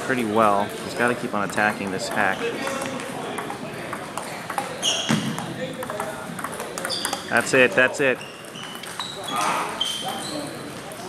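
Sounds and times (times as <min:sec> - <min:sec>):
background chatter: 0:00.0 - 0:11.0
table tennis ball knocking: 0:00.7 - 0:07.7, 0:08.4 - 0:09.1.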